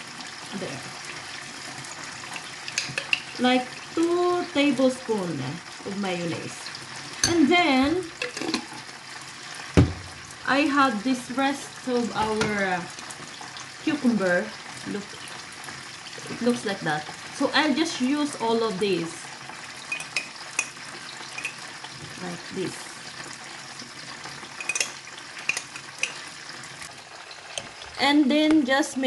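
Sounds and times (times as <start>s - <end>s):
oil sizzling with frying fish: 0.0s - 29.0s
loud knock of jar: 9.8s - 10.1s
metal spoon clinking in glass jar: 19.9s - 20.7s, 21.4s - 21.6s, 24.6s - 26.2s.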